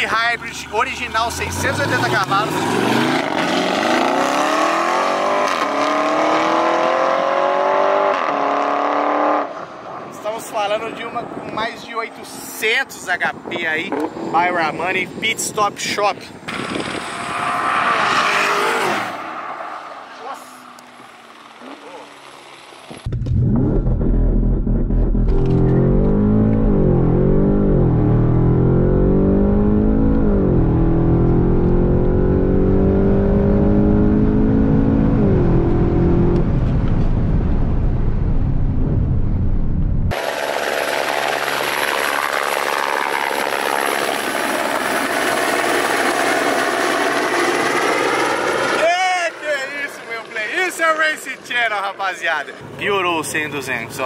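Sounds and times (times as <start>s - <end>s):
car engine accelerating from inside: 23.0s - 37.2s.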